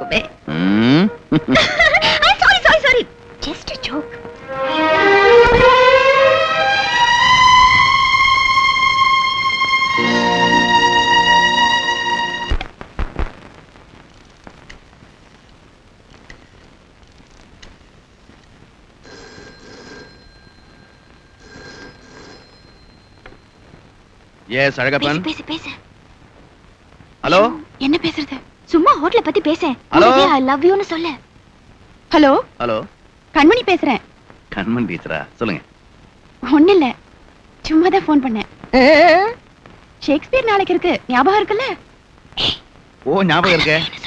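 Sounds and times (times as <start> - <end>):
telephone ringing: 19.0 - 23.9.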